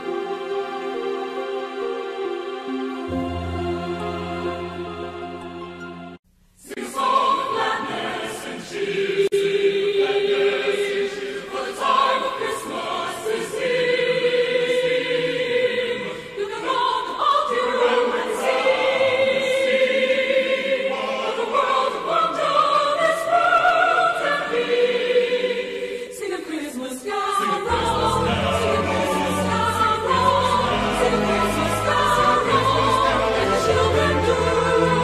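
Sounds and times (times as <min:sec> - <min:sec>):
choir singing slow song: 0:00.0 - 0:35.0.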